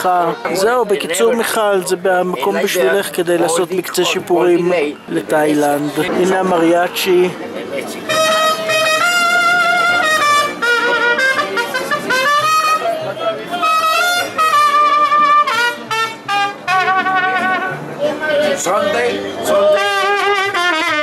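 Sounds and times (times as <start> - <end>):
mariachi band playing: 0.0 - 21.0
trumpets playing long notes: 8.1 - 13.0, 13.6 - 17.9, 19.6 - 21.0.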